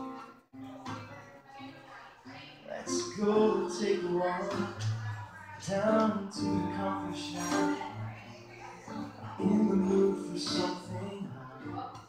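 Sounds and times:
strummed acoustic guitar chords: 0.0 - 1.2, 2.8 - 12.0
person singing: 2.7 - 12.0.

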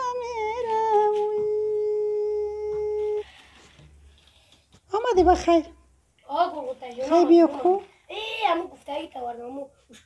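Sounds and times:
person singing on cassette: 0.0 - 3.3
faint tape hiss: 0.0 - 10.0.

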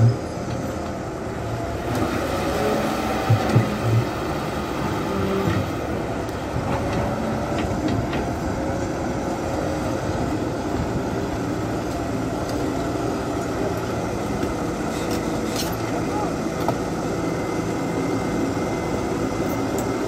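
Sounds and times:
diesel engine running: 0.0 - 20.0
hydraulic whine: 0.0 - 20.0.

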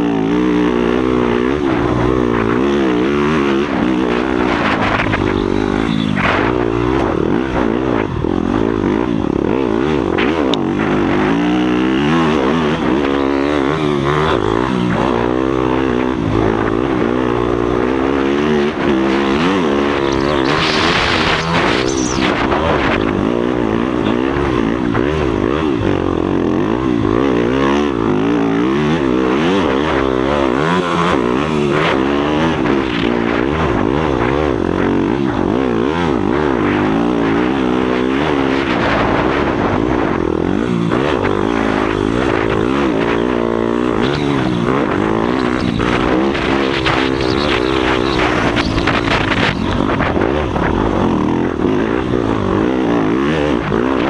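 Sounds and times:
motocross bike engine revving: 0.0 - 54.0.

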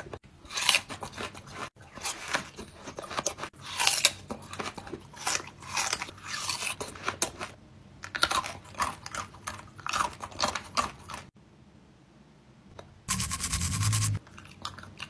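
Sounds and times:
chewing crunchy watermelon rind: 0.1 - 11.3.

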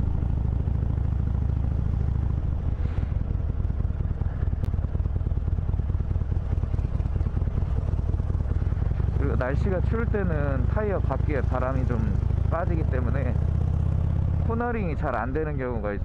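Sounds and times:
motorcycle engine rumbling: 0.0 - 16.0.

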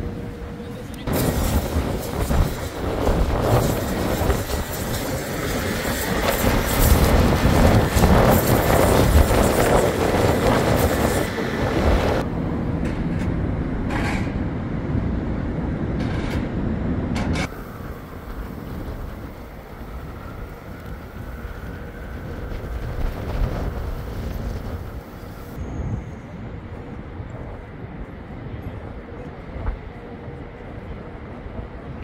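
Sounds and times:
distant city hum: 0.0 - 32.0
traffic rumble: 0.0 - 32.0.

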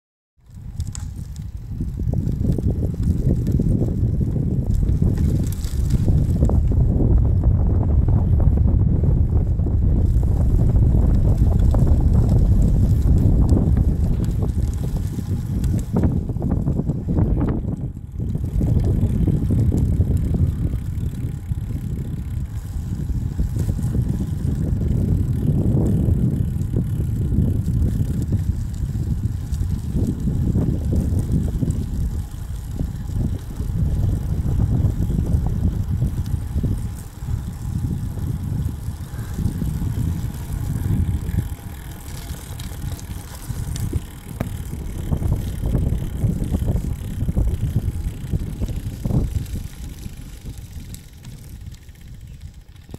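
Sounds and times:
wind buffeting microphone: 0.4 - 52.9.

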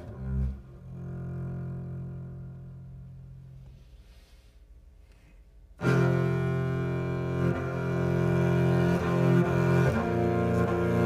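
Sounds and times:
bowed double bass note: 0.0 - 3.9, 5.8 - 11.0.

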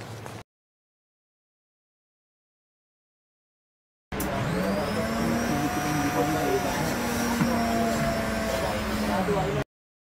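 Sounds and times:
vending machine hum: 4.1 - 9.6.

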